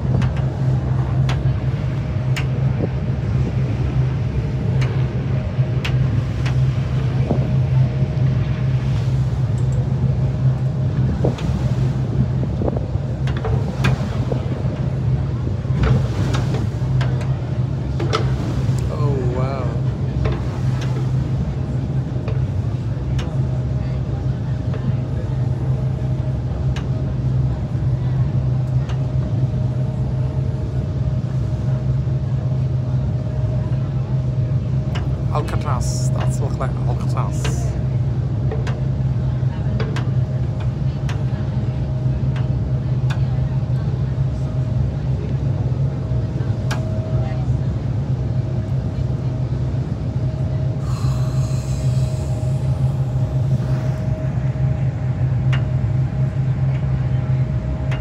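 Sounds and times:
boat engine droning: 0.0s - 58.0s
water noise: 0.0s - 58.0s
wind: 0.0s - 58.0s.

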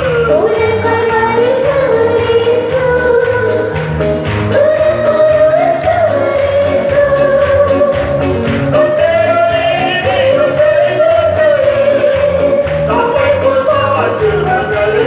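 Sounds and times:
congregation singing: 0.0s - 15.0s.

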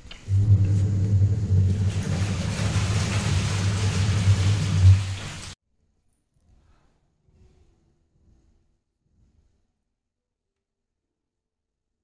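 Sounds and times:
low mechanical hum: 0.0s - 5.0s.

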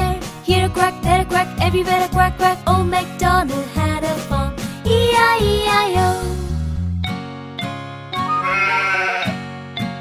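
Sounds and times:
children's song backing music: 0.0s - 6.7s
sheep bleating: 8.2s - 9.4s.

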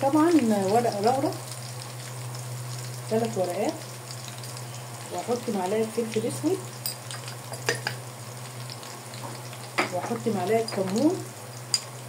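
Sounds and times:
low steady hum: 0.0s - 12.0s
meat frying in oil: 0.0s - 12.0s.

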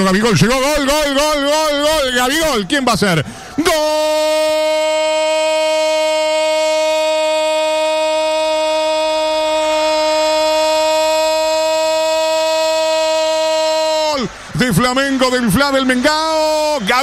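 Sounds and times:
man shouting goal cry: 0.5s - 17.0s.

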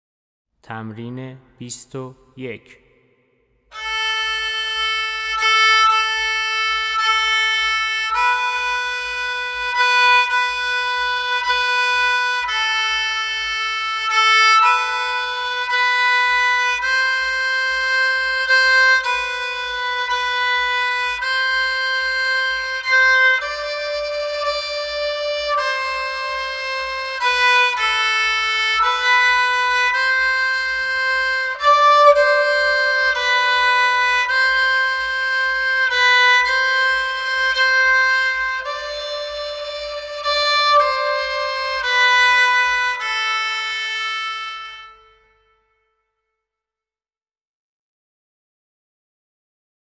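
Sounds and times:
bowed fiddle playing held notes: 3.7s - 45.8s.

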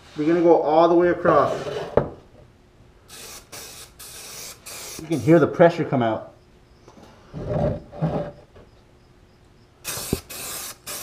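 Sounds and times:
aerosol spray can hissing: 3.1s - 5.4s, 9.8s - 11.0s.

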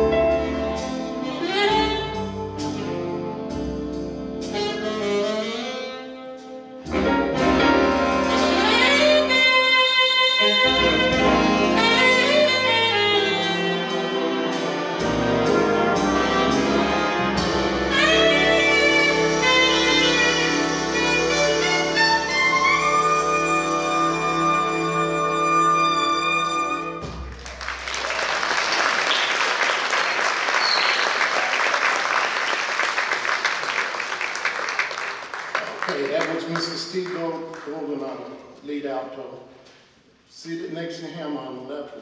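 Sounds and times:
brass: 0.0s - 28.0s
big band playing held chord: 0.0s - 30.5s
drums: 0.0s - 32.4s
horn line sliding up: 10.7s - 27.1s.

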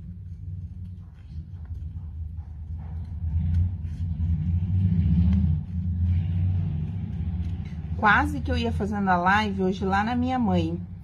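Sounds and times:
low rumble: 0.0s - 11.0s
scissors cutting paper: 2.7s - 4.6s.

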